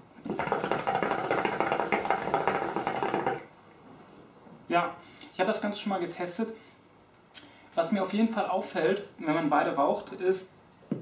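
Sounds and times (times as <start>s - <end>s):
hookah water bubbling: 0.2s - 3.5s.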